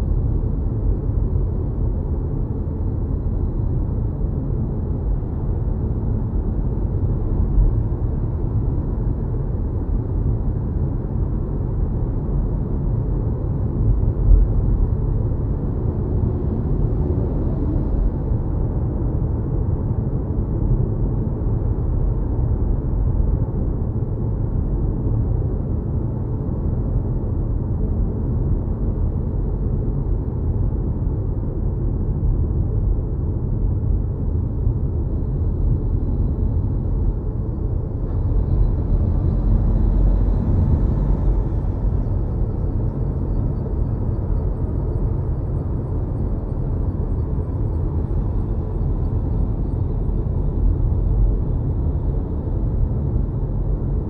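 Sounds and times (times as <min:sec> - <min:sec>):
road and tyre rumble: 0:00.0 - 0:54.0.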